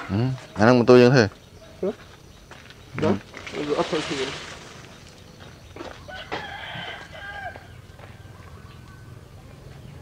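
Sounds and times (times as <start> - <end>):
rooster crowing: 6.0 - 7.8.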